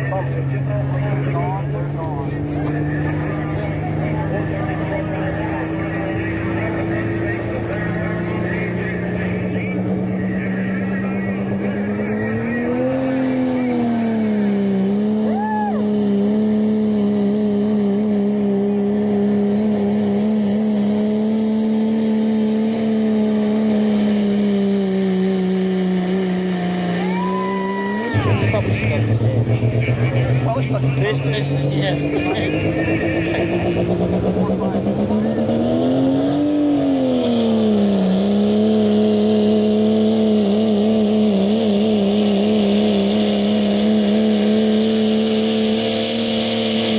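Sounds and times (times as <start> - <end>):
diesel engine at full throttle: 0.0 - 46.9.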